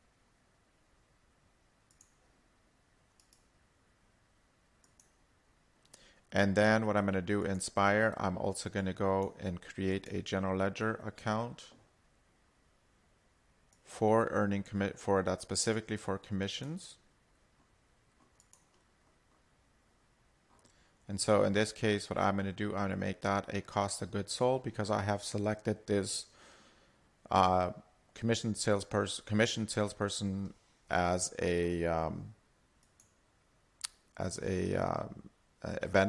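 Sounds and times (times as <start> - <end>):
computer mouse clicks: 1.9 - 2.2, 3.1 - 3.5, 4.8 - 5.2, 18.2 - 18.9, 32.8 - 33.2.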